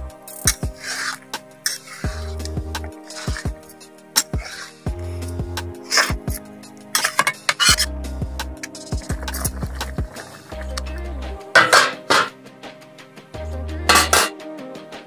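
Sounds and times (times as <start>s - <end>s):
background music: 0.0s - 15.0s
metal spoon scraping a steel pan: 0.4s - 2.5s, 3.1s - 5.3s, 5.9s - 6.3s, 7.0s - 7.9s, 11.6s - 12.3s, 13.9s - 14.4s.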